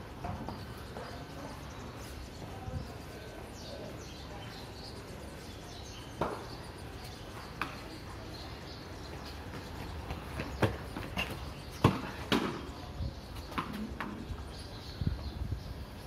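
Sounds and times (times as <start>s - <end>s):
low background noise: 0.0s - 16.0s.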